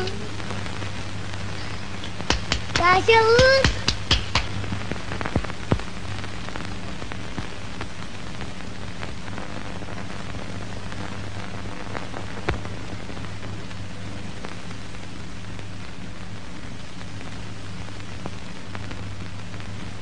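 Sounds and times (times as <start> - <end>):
film surface hiss: 0.0 - 20.0
low electrical hum: 0.0 - 20.0
sharp crackles: 0.0 - 20.0.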